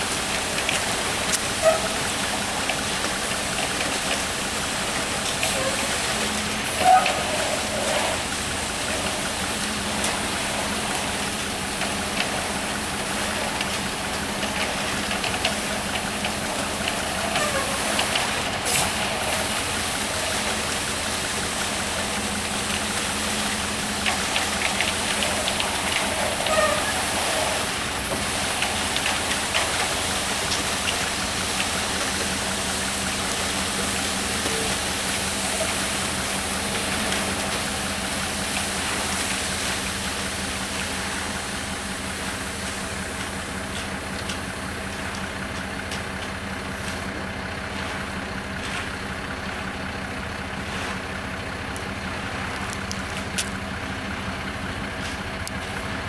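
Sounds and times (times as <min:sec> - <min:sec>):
concrete mixer truck running: 0:00.0 - 0:56.0.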